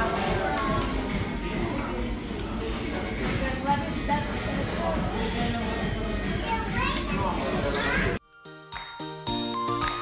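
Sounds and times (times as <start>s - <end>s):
children's voices: 6.3s - 8.2s.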